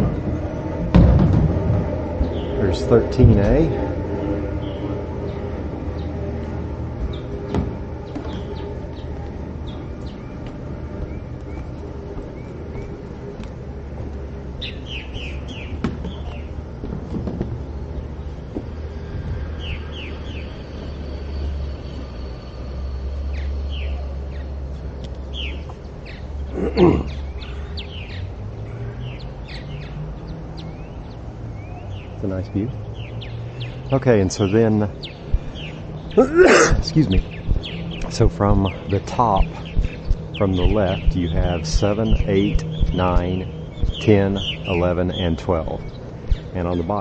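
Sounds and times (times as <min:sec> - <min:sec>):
birds chirping: 0:00.0 - 0:47.0.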